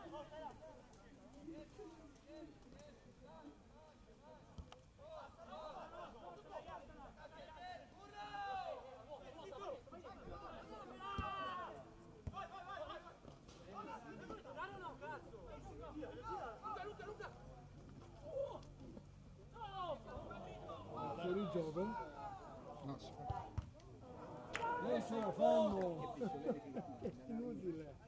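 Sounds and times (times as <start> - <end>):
people calling and talking: 0.0 - 28.0.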